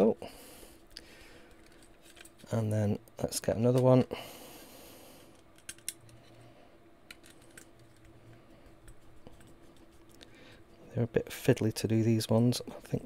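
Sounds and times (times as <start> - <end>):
faint hum: 0.0 - 13.0.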